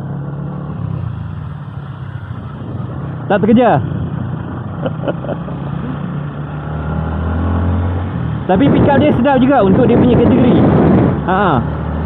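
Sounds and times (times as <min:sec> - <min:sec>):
motorcycle engine running: 0:00.0 - 0:12.0
road noise: 0:00.0 - 0:12.0
wind noise: 0:00.8 - 0:04.7, 0:08.0 - 0:12.0.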